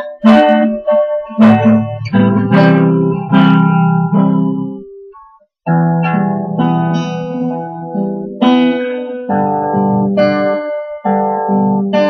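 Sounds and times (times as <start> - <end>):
guitar playing slow chords: 0.0 - 12.0.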